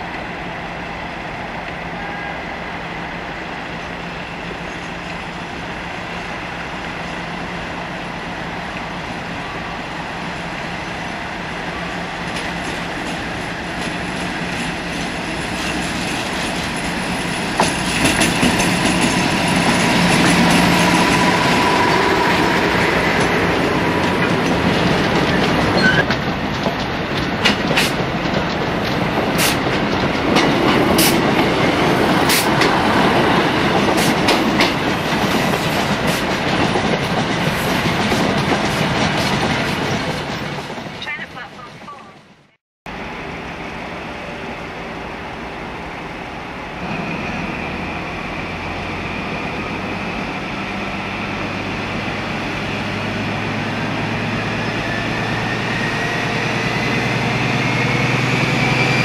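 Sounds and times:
diesel locomotive engine drone: 0.0s - 42.1s, 42.9s - 59.0s
train wheels clicking over rail joints: 12.2s - 21.9s, 22.8s - 40.9s
freight wagons rumbling: 12.2s - 42.2s.

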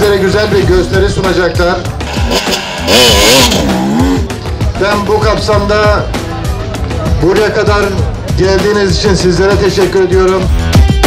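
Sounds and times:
dirt bike engine revving: 2.0s - 4.5s.

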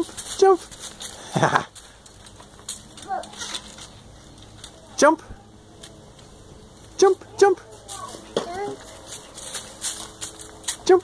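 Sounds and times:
dry leaves crunching underfoot: 0.0s - 5.0s, 7.6s - 11.0s.

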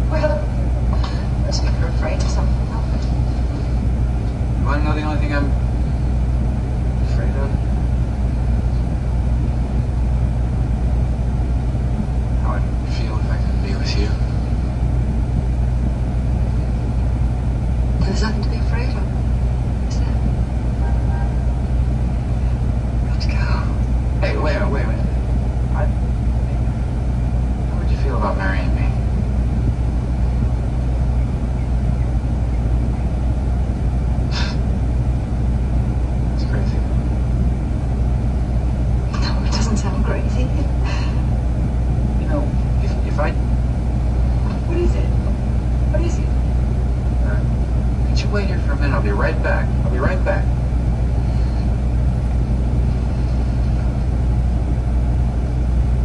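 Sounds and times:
diesel truck engine idling: 0.0s - 56.0s
film dialogue from a screen: 0.0s - 56.0s.

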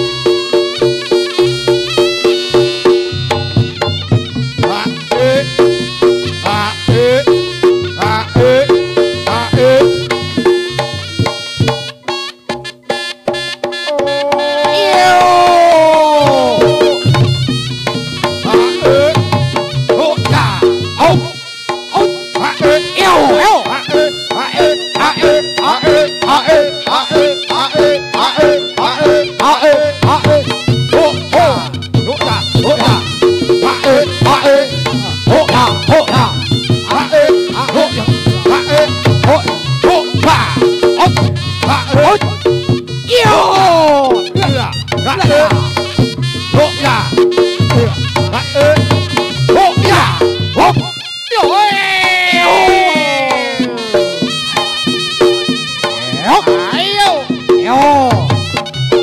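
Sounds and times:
drum strokes: 0.0s - 59.0s
shawm playing buzzy melody: 0.0s - 59.0s.

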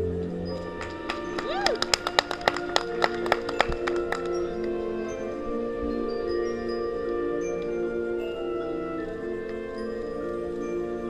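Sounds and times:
marching band chords: 0.0s - 10.2s.

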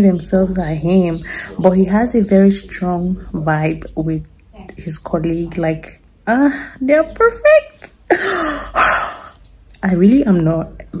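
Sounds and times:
woman speaking: 0.0s - 11.0s
woman laughing breathily: 8.1s - 9.4s.

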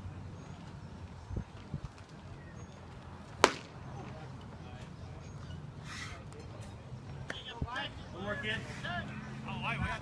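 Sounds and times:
baseball smacking into leather mitt: 3.4s - 3.8s.

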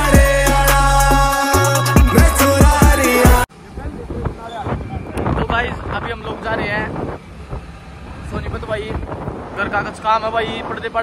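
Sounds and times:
wind buffeting microphone: 3.6s - 11.0s.

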